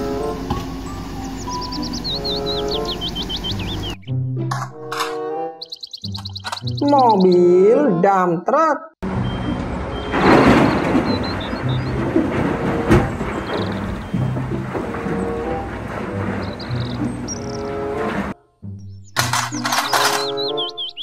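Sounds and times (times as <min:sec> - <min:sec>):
chirping tune: 0:00.0 - 0:04.5, 0:05.3 - 0:08.0, 0:09.0 - 0:12.5, 0:13.2 - 0:15.4, 0:16.2 - 0:18.0, 0:18.6 - 0:21.0
background music: 0:00.0 - 0:21.0
coal pouring into truck bed: 0:10.1 - 0:18.4.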